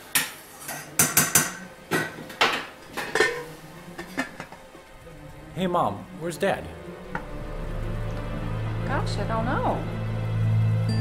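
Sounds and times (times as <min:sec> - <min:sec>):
dishes and pots clinking: 0:00.0 - 0:04.8.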